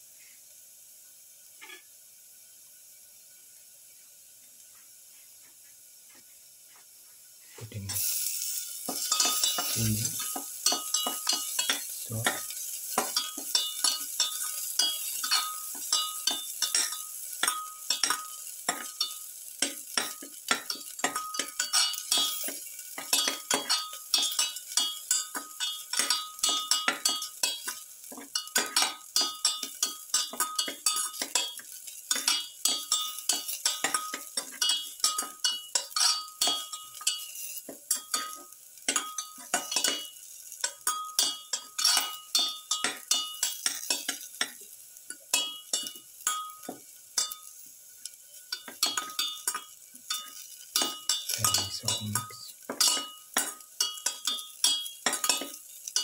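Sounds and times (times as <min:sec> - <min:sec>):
light sizzle of frying: 0:00.0 - 0:56.0
metal pan ringing: 0:08.9 - 0:19.3, 0:19.9 - 0:44.6, 0:45.3 - 0:47.5, 0:48.5 - 0:56.0
spatula scraping metal pan: 0:28.4 - 0:40.1, 0:40.8 - 0:44.3.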